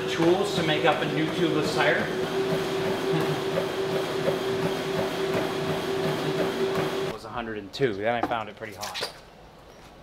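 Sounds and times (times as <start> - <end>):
treadmill motor whine: 0.0 - 7.2.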